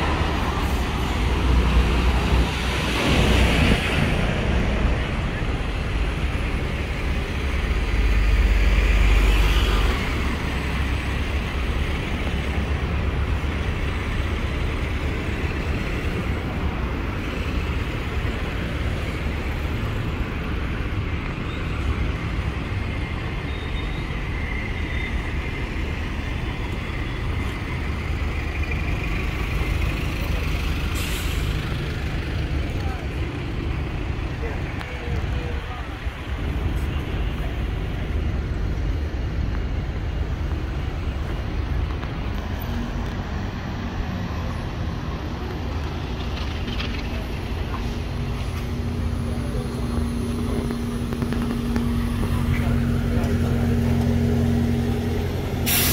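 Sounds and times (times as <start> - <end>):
bus engine rumble: 0.0 - 55.9
street traffic: 0.0 - 55.9
air-brake hisses: 55.6 - 55.9.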